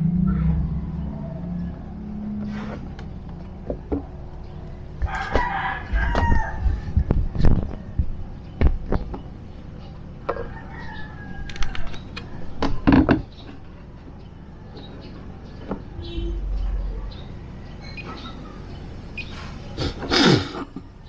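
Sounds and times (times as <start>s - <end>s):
rooster crowing: 5.0s - 7.4s, 10.3s - 12.5s.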